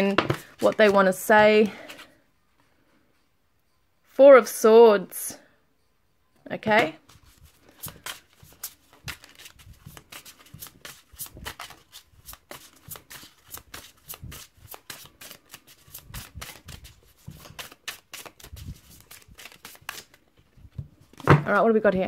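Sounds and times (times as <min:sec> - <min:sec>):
cards being shuffled: 0:00.1 - 0:02.2, 0:07.0 - 0:21.4.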